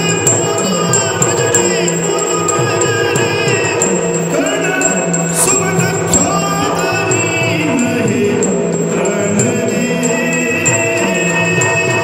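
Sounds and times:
hand cymbals ringing: 0.0s - 12.0s
man singing held melodic line: 0.0s - 12.0s.

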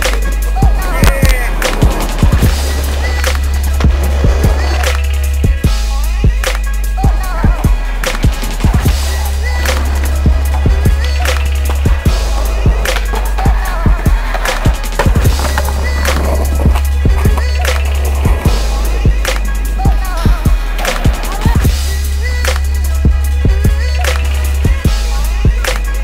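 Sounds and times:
skateboard wheels rolling on concrete: 0.0s - 5.8s, 8.1s - 21.8s
music with heavy bass: 0.0s - 26.0s.

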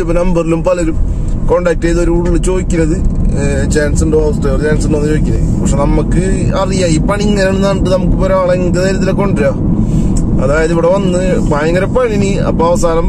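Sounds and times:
man speaking: 0.0s - 9.6s, 10.4s - 13.0s
car engine and road noise: 0.0s - 13.0s.

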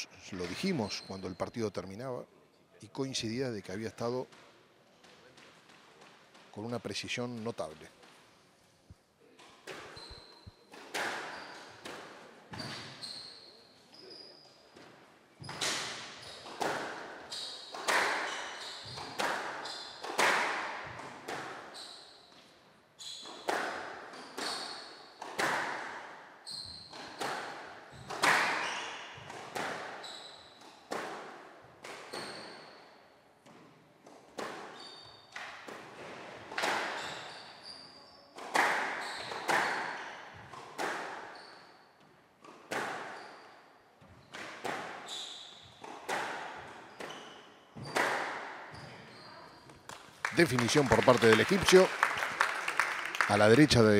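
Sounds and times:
shoes squeaking on wooden floor: 9.7s - 22.4s, 23.0s - 25.2s, 26.4s - 27.3s, 27.9s - 30.6s, 32.0s - 32.8s, 34.4s - 51.9s
squash ball hit by rackets: 15.5s - 17.1s, 17.7s - 21.6s, 23.4s - 24.6s, 25.2s - 26.0s, 27.1s - 30.0s, 30.9s - 32.3s, 35.4s - 37.0s, 38.4s - 41.3s, 42.6s - 43.2s, 44.4s - 45.1s, 45.8s - 47.2s, 47.8s - 48.7s.

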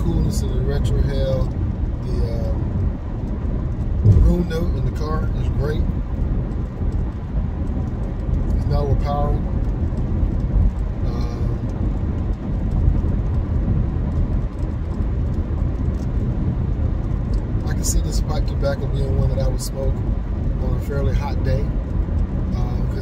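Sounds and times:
car cabin road and engine rumble: 0.0s - 23.0s.

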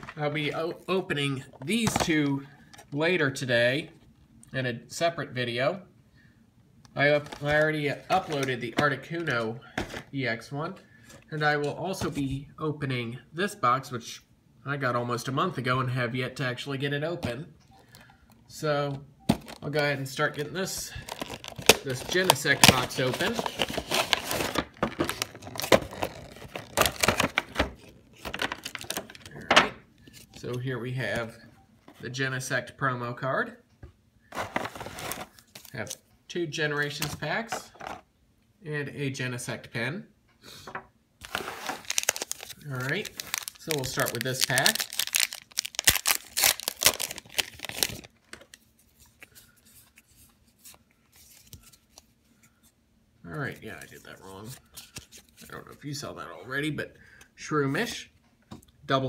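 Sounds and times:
cardboard and plastic crinkling: 19.3s - 30.5s, 34.3s - 36.0s, 41.2s - 52.1s.

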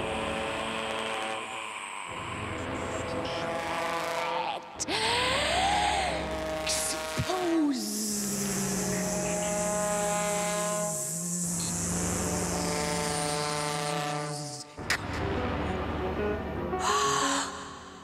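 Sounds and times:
sliding vocal sound: 0.0s - 14.7s
low sustained tone: 0.0s - 18.0s
woman singing long notes: 4.8s - 14.6s.

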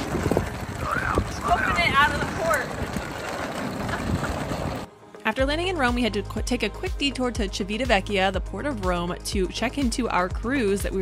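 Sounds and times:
wind buffeting microphone: 0.0s - 4.9s
suitcase wheels rolling on pavement: 0.0s - 6.6s.

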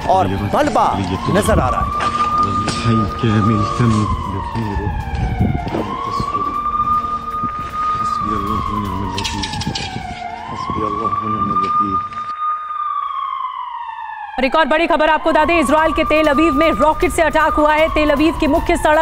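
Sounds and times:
voices: 0.0s - 7.0s, 7.7s - 12.3s, 14.4s - 19.0s
siren wailing: 0.0s - 19.0s.

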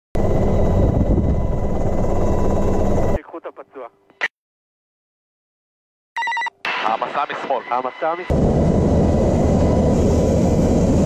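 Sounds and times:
helicopter cabin rumble: 0.2s - 3.2s, 7.8s - 11.0s
steady high whine: 6.6s - 11.0s.

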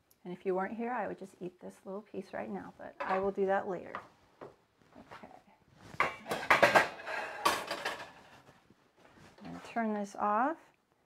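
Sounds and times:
utensils clattering against cookware: 6.0s - 8.4s.

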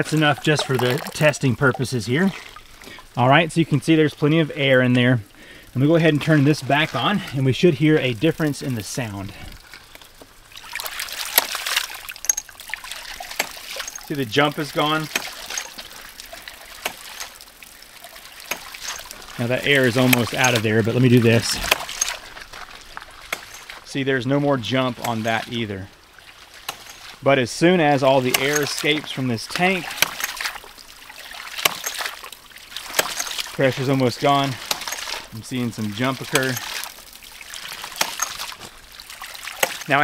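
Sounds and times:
water splashing from pump valve: 0.0s - 40.0s.

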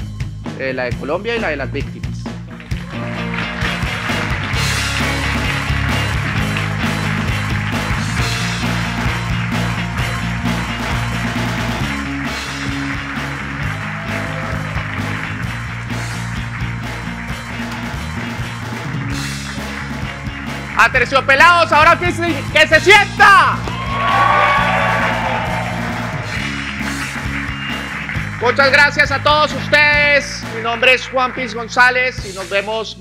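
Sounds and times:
band music playing: 0.0s - 33.0s
drums: 0.0s - 33.0s
steady bass line: 0.0s - 33.0s.

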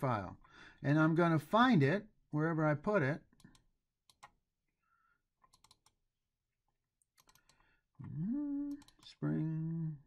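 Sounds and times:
computer mouse clicks: 3.3s - 4.4s, 5.4s - 6.0s, 7.0s - 7.7s, 8.7s - 9.1s.

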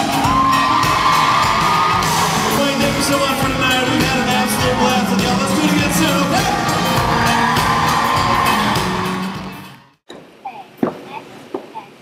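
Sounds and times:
crowd whooping: 0.0s - 9.8s.

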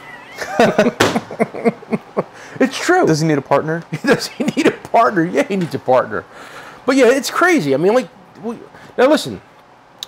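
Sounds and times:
person laughing in short bursts: 0.3s - 2.4s.

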